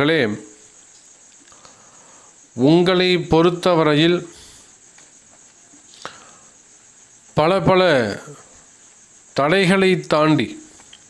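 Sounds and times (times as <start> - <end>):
man speaking: 0.0 - 0.6, 2.6 - 4.4, 7.4 - 8.5, 9.4 - 10.7.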